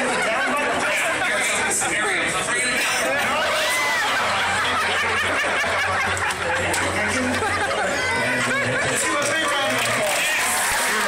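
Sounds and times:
audience laughing: 0.0 - 11.0.

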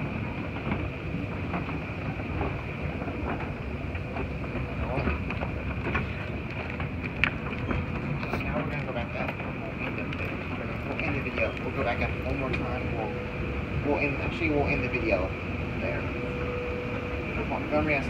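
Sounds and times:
escalator steps clicking: 0.0 - 13.4
escalator high whine: 0.0 - 18.0
escalator rumbling: 0.0 - 18.0.

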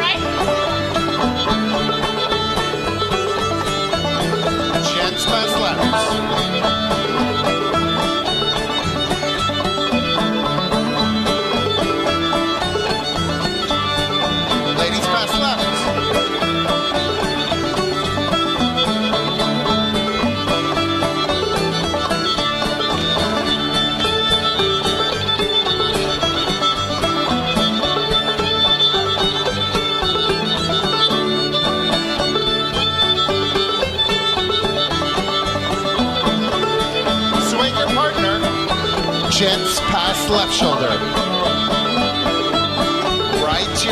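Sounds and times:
banjo: 0.0 - 43.9
fiddle leading dance tune: 0.0 - 43.9
plucked-string accompaniment: 0.0 - 43.9
steady driving beat: 0.0 - 43.9.

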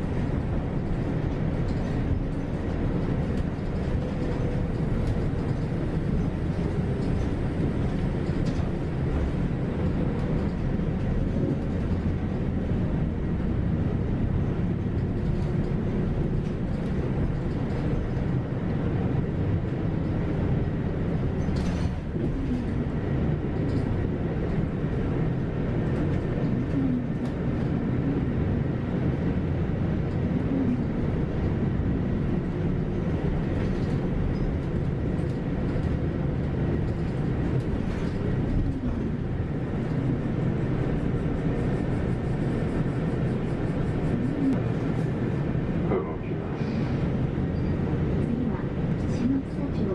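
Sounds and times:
bus engine and road noise: 0.0 - 49.9.

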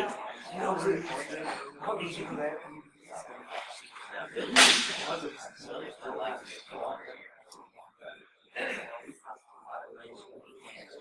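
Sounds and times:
low voices talking: 0.0 - 11.0.

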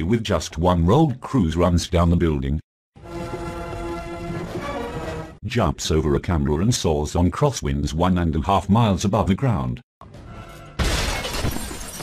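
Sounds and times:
film score music: 3.0 - 6.1, 10.0 - 10.8
glass window shattering: 10.8 - 12.0.

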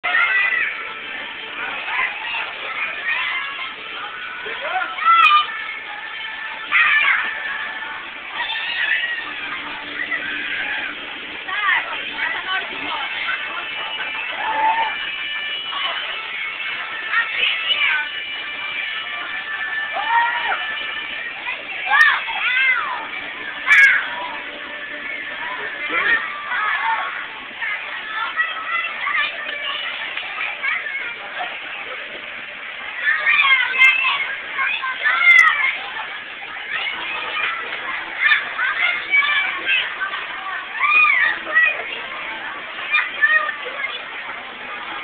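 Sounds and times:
background of children playing: 0.0 - 45.0
children squealing and shouting: 0.0 - 45.0.

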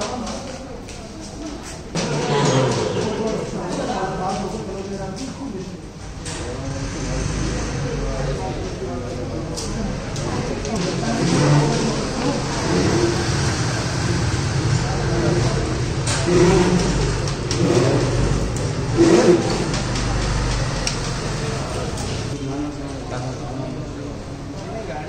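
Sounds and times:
people talking indistinctly: 0.0 - 25.0.

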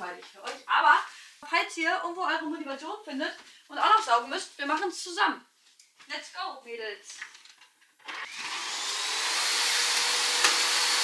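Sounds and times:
vacuum cleaner motor whine: 8.1 - 11.0.

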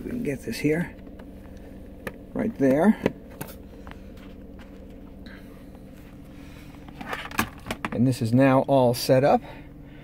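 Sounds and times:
low car cabin hum: 0.0 - 10.0
faint handling clicks and taps: 0.8 - 6.1.

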